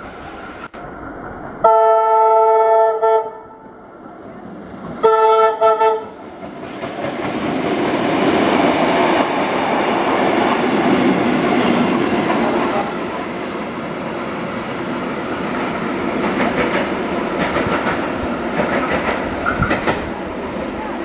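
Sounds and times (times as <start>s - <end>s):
train running noise: 0.0s - 21.0s
train horn blasts: 1.6s - 3.6s, 5.0s - 6.2s.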